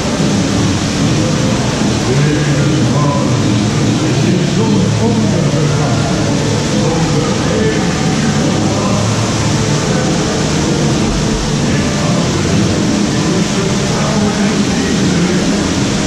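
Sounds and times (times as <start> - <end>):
faint show soundtrack music: 0.0 - 16.0
loud wash of noise: 0.0 - 16.0.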